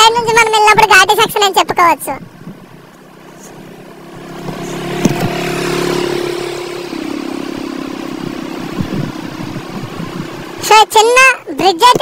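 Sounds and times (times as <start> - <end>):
road and wind noise: 0.0 - 12.0
motorcycle engine running: 2.3 - 11.0.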